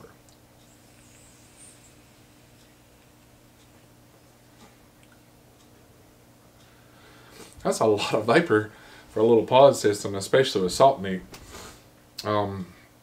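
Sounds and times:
low room hum: 0.0 - 13.0
vape airflow hiss: 0.6 - 3.9.

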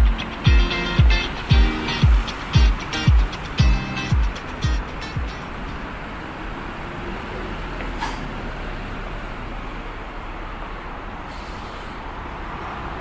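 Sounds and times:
music with kick-drum beat: 0.0 - 5.4
road traffic noise: 0.0 - 13.0.

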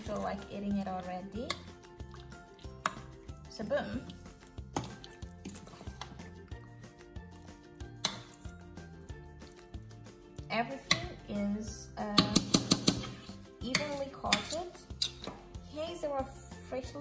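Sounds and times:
metal spoon scraping steel bowl: 7.9 - 8.6, 10.8 - 11.3, 12.2 - 15.3.

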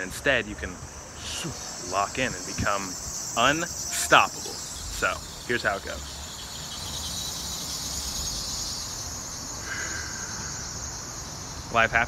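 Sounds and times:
high-pitched hiss: 0.0 - 12.0.

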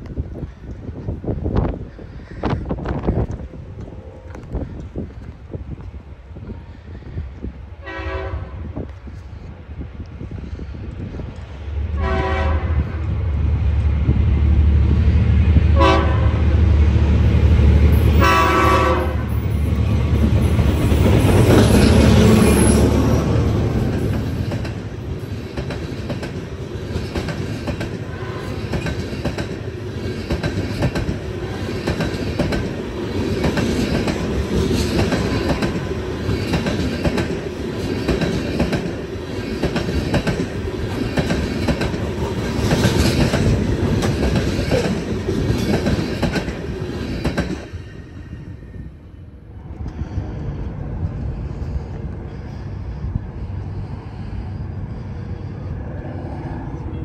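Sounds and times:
train horn blast: 7.8 - 8.8, 12.0 - 13.1, 15.7 - 16.6, 18.1 - 19.4, 28.1 - 28.7
train wheels clacking on rail joints: 23.7 - 47.8.

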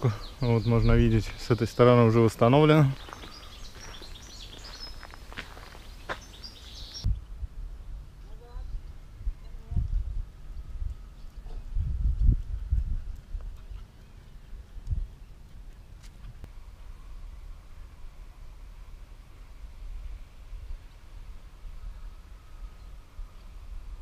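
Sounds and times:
wind gusts on microphone: 0.2 - 15.3
faint bird chirps: 3.0 - 7.2.

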